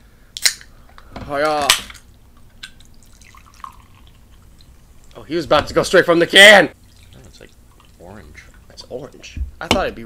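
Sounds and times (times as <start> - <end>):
soda pouring into a glass: 3.0 - 4.4.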